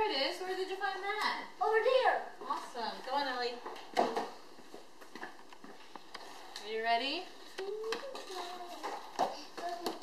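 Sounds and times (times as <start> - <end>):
child's high voice: 7.6 - 10.0.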